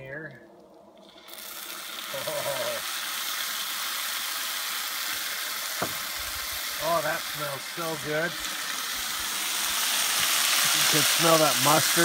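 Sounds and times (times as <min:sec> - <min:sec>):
dressing sizzling in skillet: 0:01.1 - 0:12.0.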